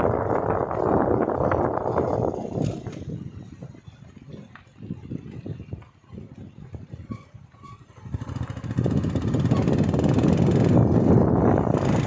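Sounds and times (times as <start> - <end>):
engine and wind rush: 0.0 - 12.0.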